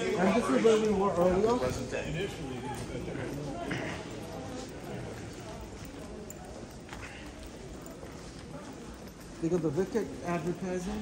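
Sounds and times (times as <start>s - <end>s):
faint murmur of voices: 0.0s - 11.0s
footsteps on stone floor: 0.0s - 11.0s.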